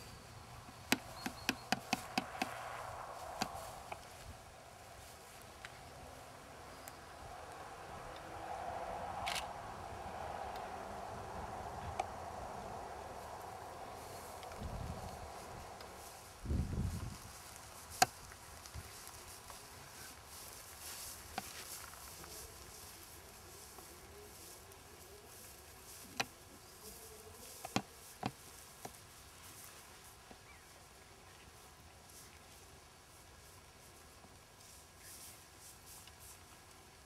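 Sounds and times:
faint outdoor background: 0.0s - 37.0s.

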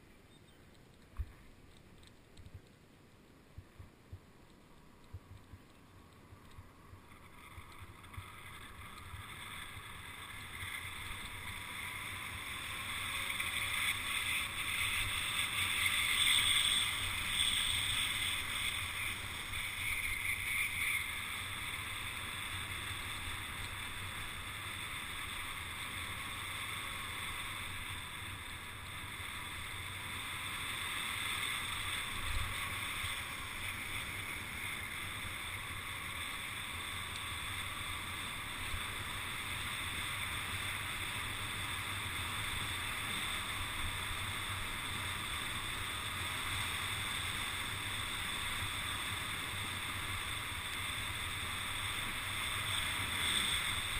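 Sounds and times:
tyres rolling on asphalt: 0.0s - 53.9s.

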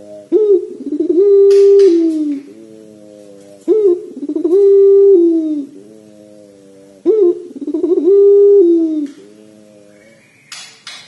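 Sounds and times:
dove cooing: 0.0s - 10.4s.

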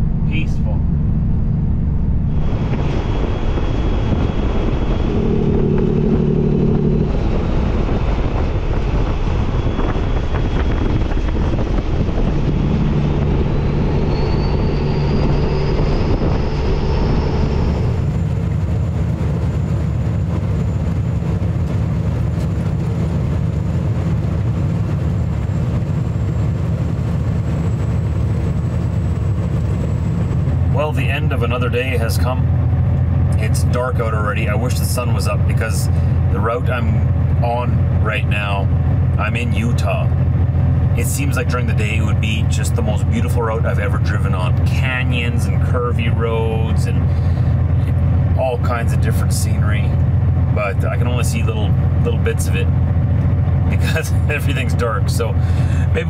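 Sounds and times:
diesel truck engine drone: 0.0s - 56.0s
road noise: 0.0s - 56.0s.

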